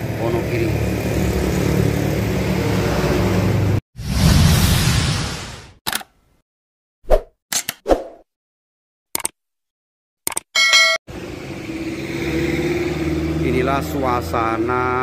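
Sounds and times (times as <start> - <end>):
street noise: 0.0 - 3.8, 11.1 - 15.0
bright ding: 10.6 - 11.0.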